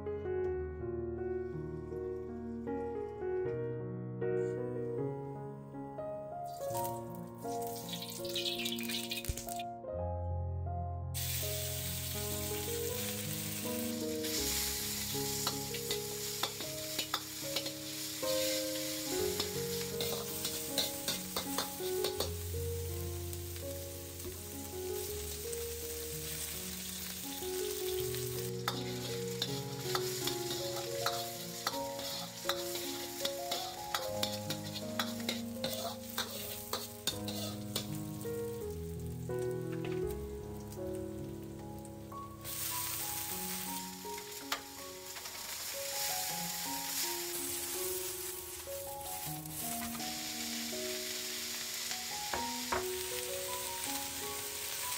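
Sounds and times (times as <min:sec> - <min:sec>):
background music: 0:00.0 - 0:54.9
meat sizzling in a wok: 0:06.5 - 0:09.6, 0:11.2 - 0:54.9
metal ladle scraping a wok: 0:14.2 - 0:22.4, 0:28.1 - 0:37.9.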